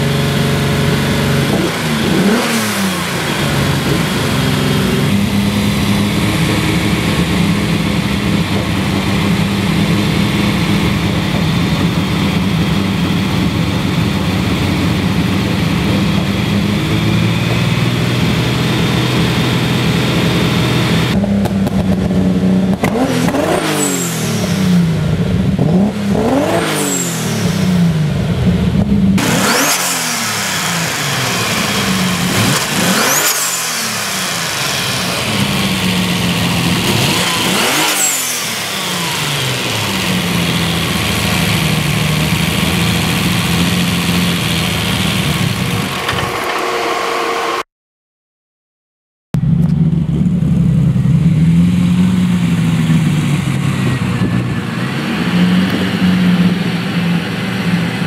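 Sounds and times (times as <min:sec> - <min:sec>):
turbocharged car engine revving: 0:00.0 - 0:47.7, 0:49.4 - 0:58.0.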